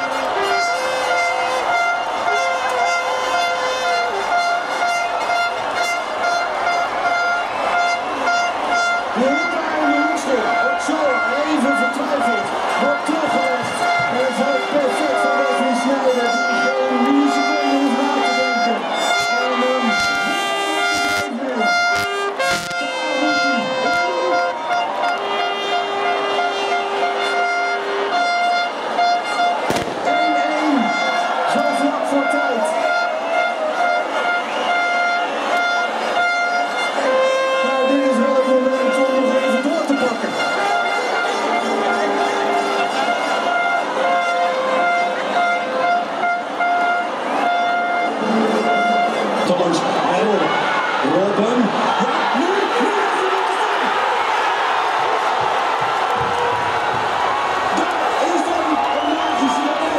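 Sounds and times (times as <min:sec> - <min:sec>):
crowd shouting and singing: 0:00.0 - 0:59.9
horns sounding: 0:00.0 - 0:59.9.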